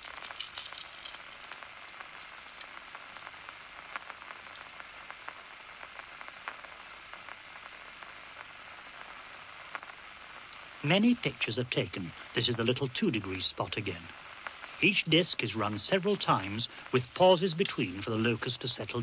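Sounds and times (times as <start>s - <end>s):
faint clicks and crackles: 0.0s - 19.0s
steady hiss: 0.0s - 19.0s.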